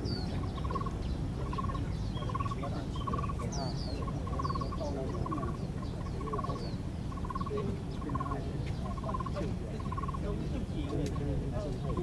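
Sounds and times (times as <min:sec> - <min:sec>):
bird rolling trill call: 0:00.0 - 0:10.3
small birds chirping: 0:00.0 - 0:12.0.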